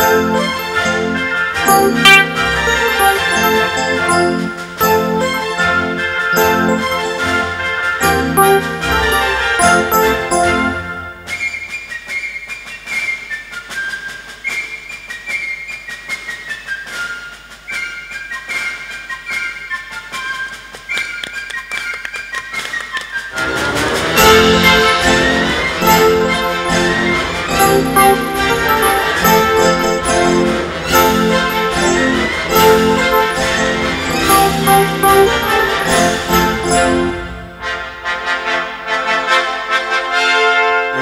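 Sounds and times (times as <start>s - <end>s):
electronic keyboard music: 0.0s - 11.1s, 24.2s - 37.6s
flute-like high melody: 0.0s - 12.4s, 16.2s - 37.7s.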